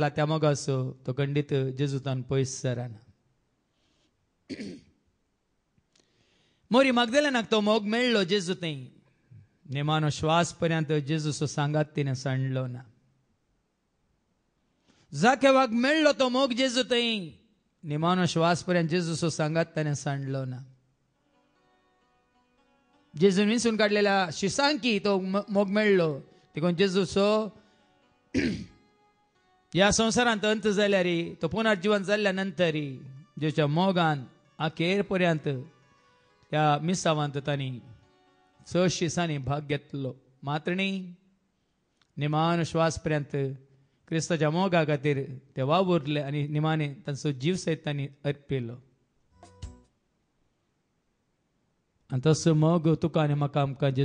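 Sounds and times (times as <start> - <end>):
man clearing his throat: 4.5 - 5.0, 28.3 - 28.8.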